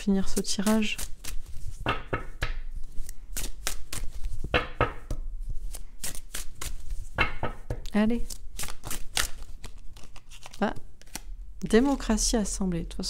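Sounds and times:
cards being shuffled: 0:00.2 - 0:12.2.

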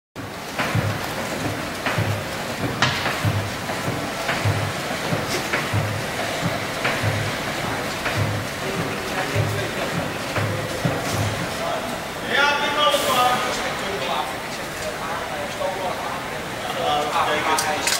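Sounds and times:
hydraulic plates humming and knocking: 0:00.2 - 0:12.2
man speaking: 0:08.6 - 0:17.9.

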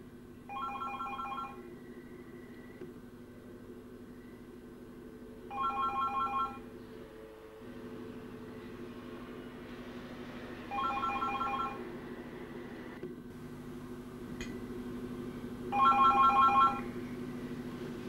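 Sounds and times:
steady low hum: 0:00.0 - 0:18.0
telephone ringing electronic trill: 0:00.5 - 0:01.6, 0:05.5 - 0:06.6, 0:10.7 - 0:11.8, 0:15.7 - 0:16.9.

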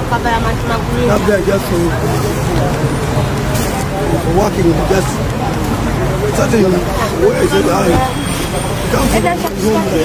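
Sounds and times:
road traffic noise: 0:00.0 - 0:10.0
man talking: 0:04.0 - 0:05.3, 0:06.2 - 0:08.0.

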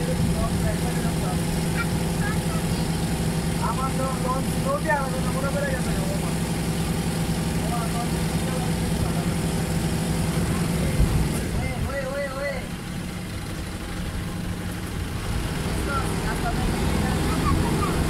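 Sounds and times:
boat engine drone: 0:00.0 - 0:18.0.

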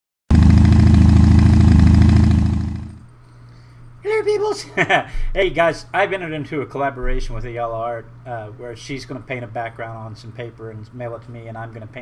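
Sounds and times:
motorcycle engine running: 0:00.3 - 0:03.1.

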